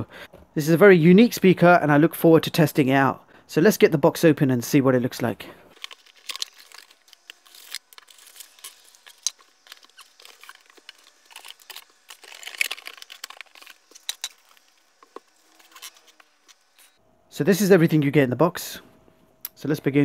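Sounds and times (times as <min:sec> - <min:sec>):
plastic wrapping crinkling: 0:05.7 - 0:17.0.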